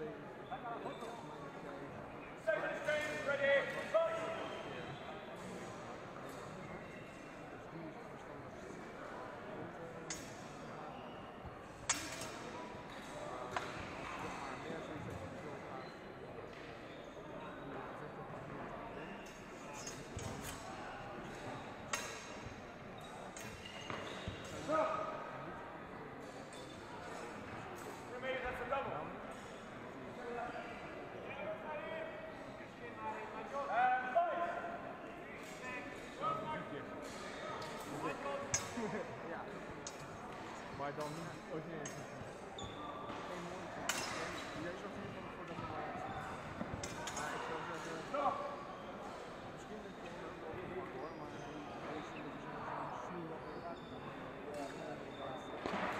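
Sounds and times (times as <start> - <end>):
echoing murmur of voices: 0.0 - 55.9
fencing swords clacking: 11.8 - 12.5, 37.1 - 38.9.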